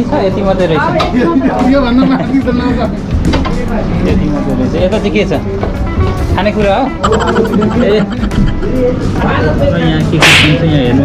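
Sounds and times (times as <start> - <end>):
background music: 1.4 - 10.2
voices: 7.0 - 9.7.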